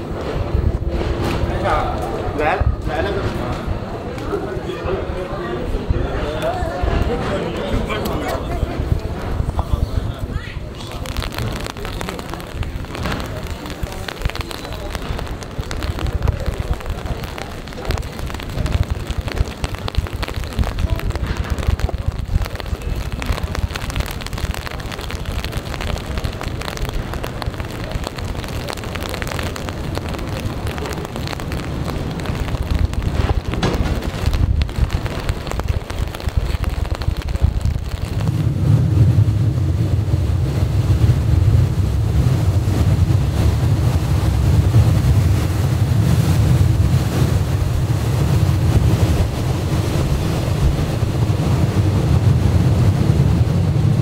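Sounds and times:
rain: 0.0s - 54.0s
wind buffeting microphone: 0.0s - 54.0s.

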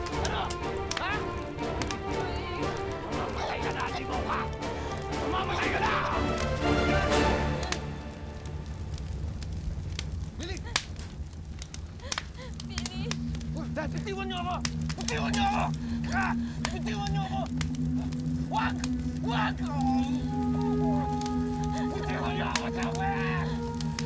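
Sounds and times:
dramatic score drone: 0.0s - 24.0s
flames crackling: 0.0s - 24.0s
person wailing: 5.2s - 6.4s, 14.4s - 17.5s, 18.5s - 24.0s.

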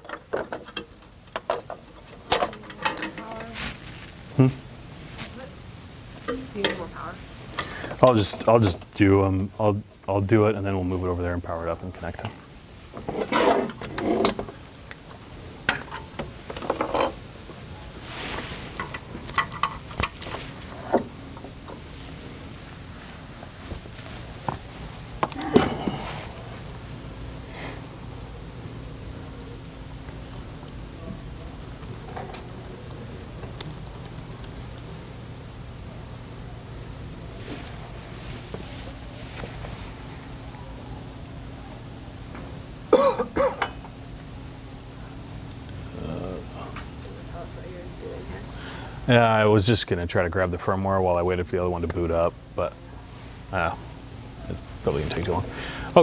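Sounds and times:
person coughing: 25.4s - 26.1s, 42.9s - 43.8s.

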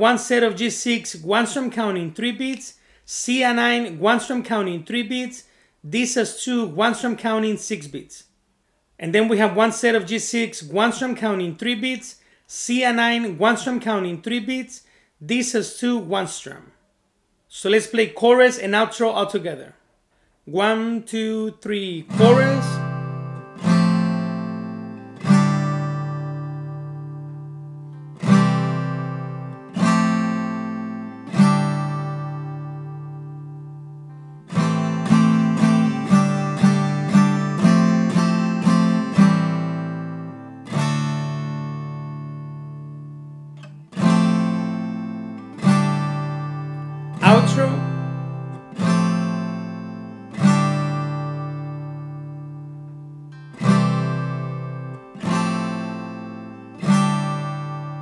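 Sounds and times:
acoustic guitar strumming chords: 0.0s - 2.6s, 21.8s - 58.0s.

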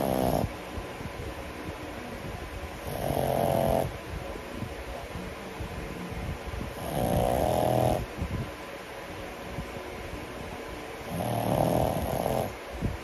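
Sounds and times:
dog snoring: 0.0s - 0.5s, 2.8s - 3.9s, 6.7s - 8.1s, 11.0s - 12.6s
dog breathing: 0.0s - 0.6s, 2.8s - 4.0s, 6.6s - 8.3s, 11.0s - 12.6s.

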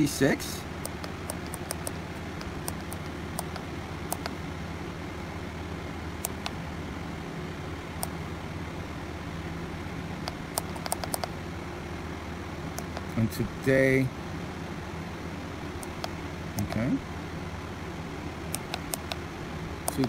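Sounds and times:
steady low hum: 0.0s - 20.0s
keypad button clicks: 0.8s - 4.3s, 10.2s - 11.3s.

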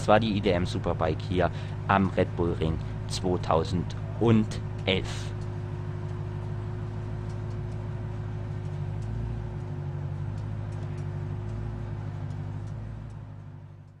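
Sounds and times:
low engine drone: 0.0s - 14.0s.

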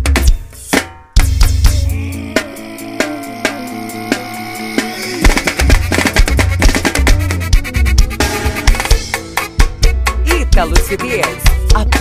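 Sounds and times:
sharp percussive hits: 0.0s - 10.1s
heavy kick drum beat: 0.0s - 12.0s
held synth notes over bass tone: 1.5s - 8.4s.

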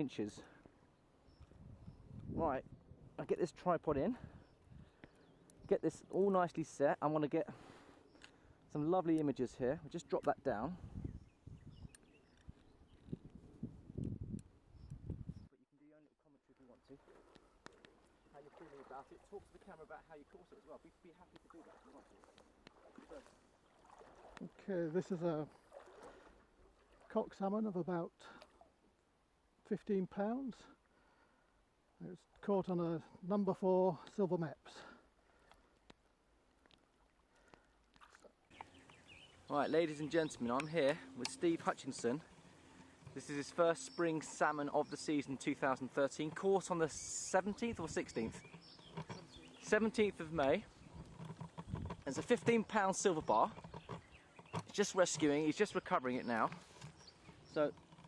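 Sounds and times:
faint clicks: 4.6s - 6.2s, 8.1s - 8.4s, 11.8s - 13.4s, 16.6s - 18.2s, 35.3s - 39.2s
tripod handling bumps and rustles: 48.2s - 50.0s, 50.6s - 52.7s, 53.4s - 55.4s, 56.4s - 58.0s.

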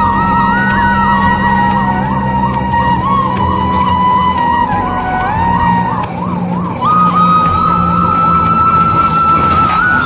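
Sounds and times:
ambulance siren yelping: 0.0s - 10.0s
steady higher siren tone: 0.0s - 10.0s.

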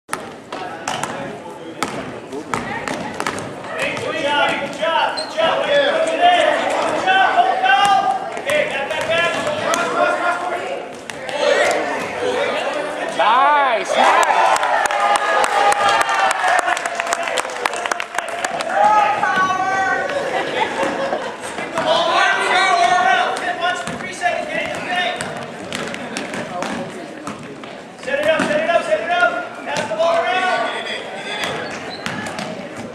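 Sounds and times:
basketball bouncing on gym floor: 0.1s - 4.8s, 7.8s - 9.8s, 23.3s - 28.6s, 31.4s - 32.9s
people shouting: 18.6s - 20.1s.

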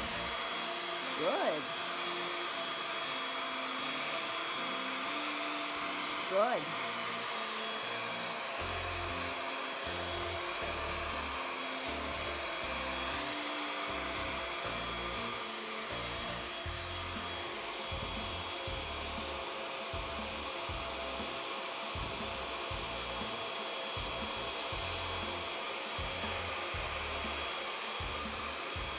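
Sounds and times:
handheld vacuum motor whine: 0.0s - 28.9s
background music with bass: 13.9s - 19.4s, 20.0s - 21.4s, 22.0s - 23.4s, 24.0s - 28.9s.

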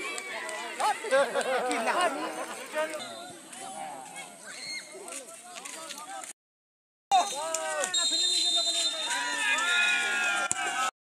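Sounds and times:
players shouting: 7.1s - 10.9s.

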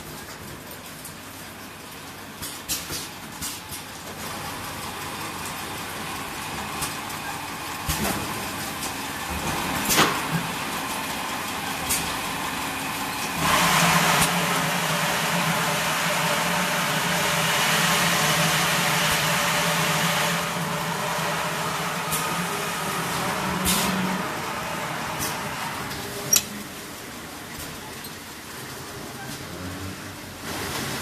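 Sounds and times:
filling machine running: 4.0s - 29.1s.

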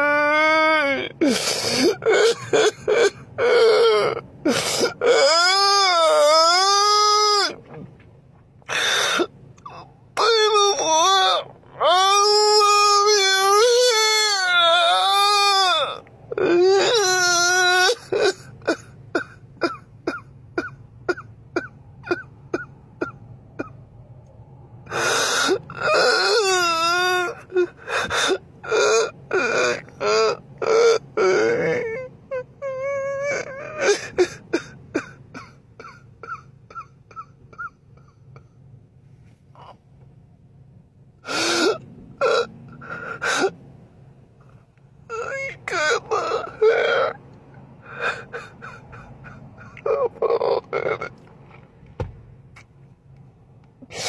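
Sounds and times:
man sobbing and wailing: 0.0s - 7.6s, 8.7s - 23.8s, 24.9s - 38.6s, 45.1s - 47.2s, 47.8s - 51.3s
man wailing: 10.2s - 18.2s, 45.1s - 47.2s.

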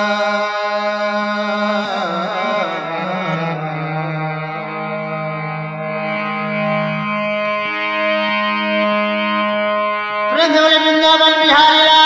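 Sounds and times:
harmonium playing: 0.0s - 12.0s.

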